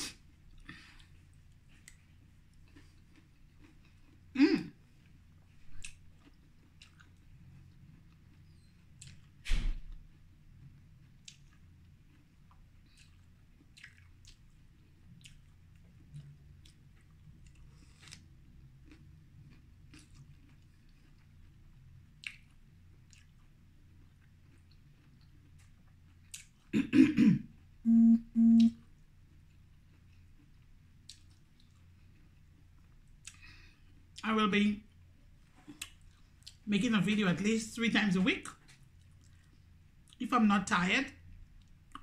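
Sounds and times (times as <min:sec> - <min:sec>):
throat clearing: 0:04.3 - 0:04.8, 0:26.7 - 0:27.5
wet chewing: 0:05.0 - 0:09.3, 0:11.1 - 0:26.7, 0:29.9 - 0:34.0
short hummed sounds: 0:27.9 - 0:28.8.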